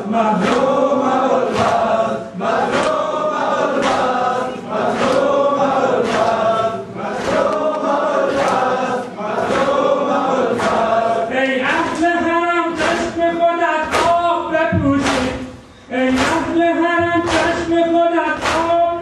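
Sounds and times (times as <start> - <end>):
men chanting in unison: 0.0 - 19.0
rhythmic sharp strikes: 0.0 - 19.0.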